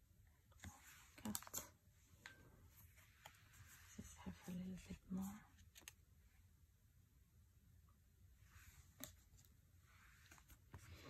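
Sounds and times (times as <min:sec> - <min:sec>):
cards being handled and flipped: 0:00.6 - 0:01.8, 0:04.8 - 0:06.1, 0:08.7 - 0:11.0.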